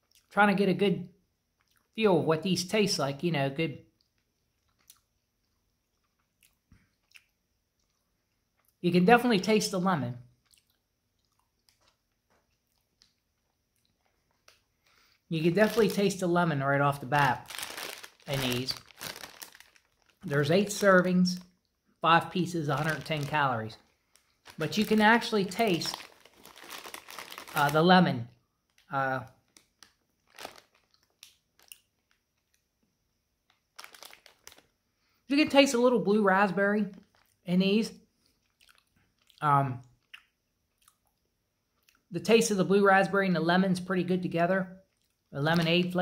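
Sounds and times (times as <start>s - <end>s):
candy being chewed: 3.9s - 8.8s, 10.3s - 16.2s, 16.9s - 22.0s, 22.7s - 34.8s, 36.9s - 37.5s, 38.1s - 42.1s, 44.8s - 45.8s
mouth clicks of chewing candy: 3.9s - 8.8s, 10.4s - 14.7s, 38.2s - 42.1s
plastic bag crinkling: 11.6s - 32.6s, 33.4s - 34.7s, 36.5s - 37.5s.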